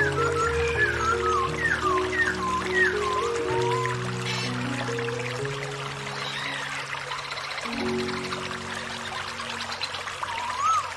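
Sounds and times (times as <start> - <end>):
soft music of low chords: 0.0 - 10.3
stream pouring over rocks: 0.0 - 10.9.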